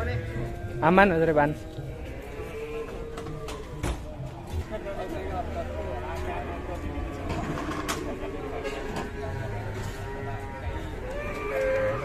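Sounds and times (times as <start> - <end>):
indistinct voices talking: 0.0 - 12.0.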